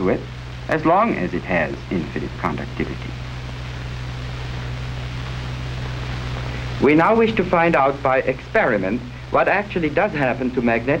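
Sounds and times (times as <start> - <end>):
film soundtrack hiss: 0.0 - 11.0
low constant hum: 0.0 - 11.0.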